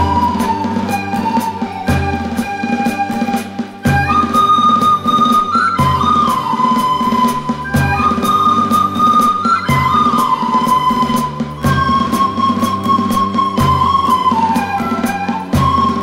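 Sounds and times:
drum kit steady beat: 0.0 - 14.4
acoustic guitar: 0.0 - 16.0
recorder ensemble melody: 0.0 - 16.0.

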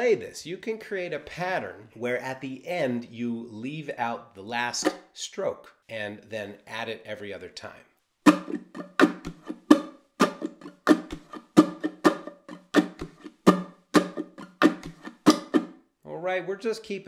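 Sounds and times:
ukulele strumming: 8.3 - 15.8.

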